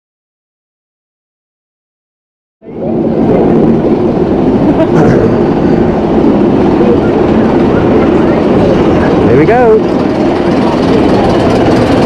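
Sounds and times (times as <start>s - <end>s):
roller coaster rumble and clatter: 2.6s - 12.0s.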